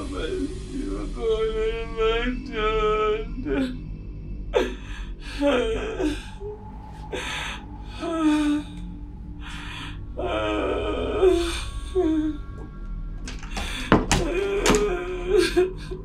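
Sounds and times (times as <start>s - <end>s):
person gasping and moaning: 4.6s - 12.7s, 13.3s - 16.0s.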